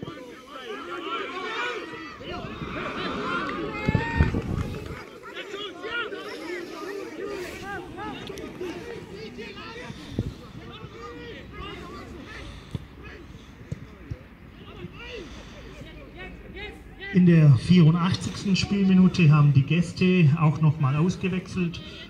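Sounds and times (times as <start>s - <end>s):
players and spectators shouting: 0.0s - 22.0s.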